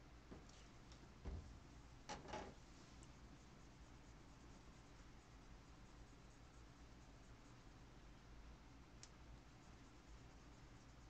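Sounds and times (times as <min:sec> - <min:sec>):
soft low thump: 0:01.2 - 0:01.6.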